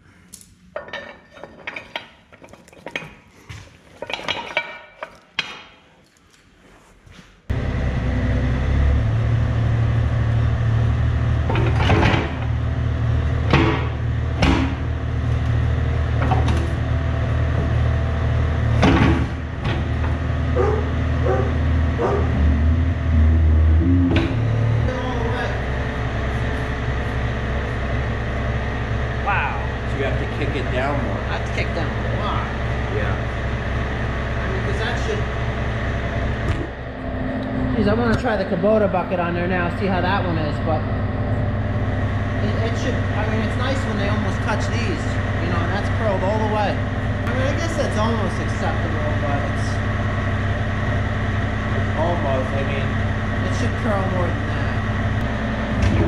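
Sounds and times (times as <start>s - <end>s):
excavator diesel engine running: 7.5s - 56.0s.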